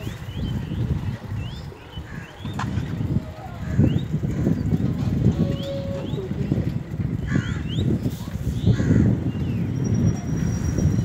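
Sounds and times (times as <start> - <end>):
wind and road noise: 0.0 - 11.0.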